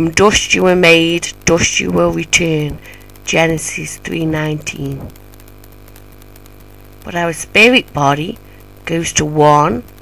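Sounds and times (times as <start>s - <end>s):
faint hiss: 0.0s - 10.0s
low hum with sustained tones: 0.0s - 10.0s.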